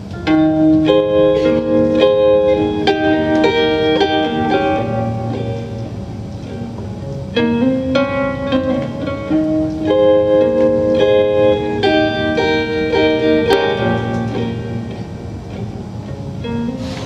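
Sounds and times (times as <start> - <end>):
electric guitar ringing chords: 0.0 - 17.0.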